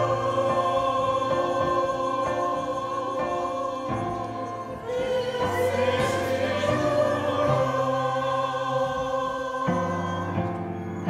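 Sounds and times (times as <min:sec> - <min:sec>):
mixed choir singing held chords: 0:00.0 - 0:11.0.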